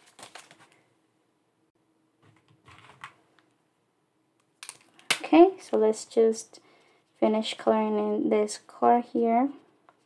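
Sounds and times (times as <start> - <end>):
paper bills and plastic rustling: 0.0 - 0.8.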